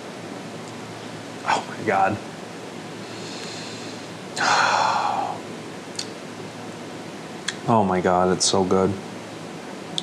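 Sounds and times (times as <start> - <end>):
intake of breath: 3.0 - 5.3
man exhaling breathily: 3.1 - 5.4
mouth click: 7.4 - 7.6.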